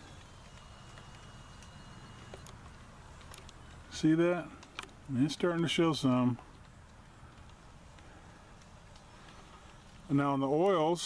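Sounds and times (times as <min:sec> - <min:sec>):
zoom motor whine: 0:00.0 - 0:03.8
faint ticks: 0:06.3 - 0:10.1.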